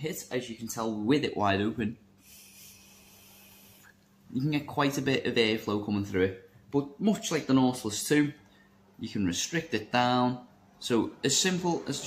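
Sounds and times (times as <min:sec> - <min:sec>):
airy hiss of vape draw: 0:02.2 - 0:04.0.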